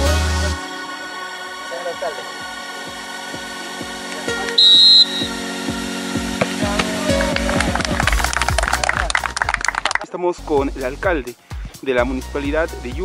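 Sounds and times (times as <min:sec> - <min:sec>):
referee's whistle blast: 0:04.6 - 0:05.4
hand clapping: 0:06.4 - 0:10.1.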